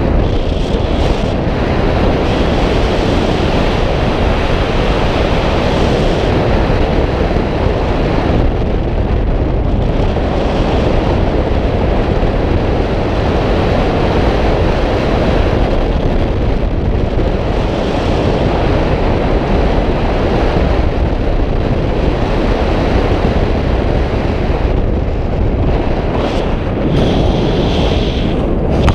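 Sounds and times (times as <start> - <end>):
wind rumble on microphone: 0.0 - 28.9.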